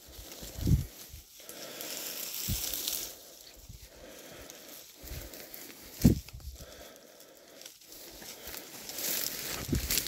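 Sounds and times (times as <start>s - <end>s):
dry undergrowth rustling: 0.0s - 10.0s.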